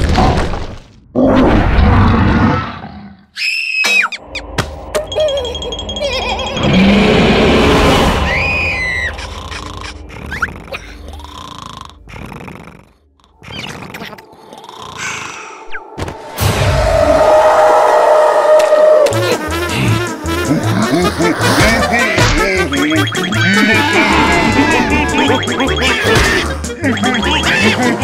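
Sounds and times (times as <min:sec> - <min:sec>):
squeaky vocal noises: 0:08.0 - 0:15.7, 0:19.1 - 0:28.0
cartoon roaring cry: 0:23.3 - 0:25.4.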